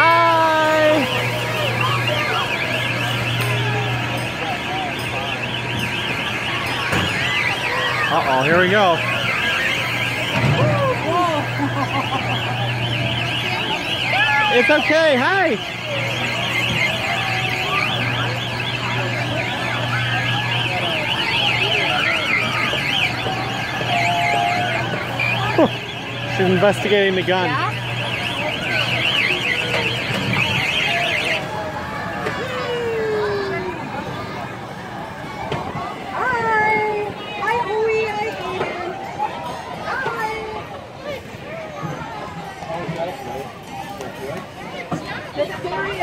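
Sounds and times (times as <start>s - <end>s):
warbling electronic siren: 0.0s - 40.5s
crowd voices: 0.0s - 46.0s.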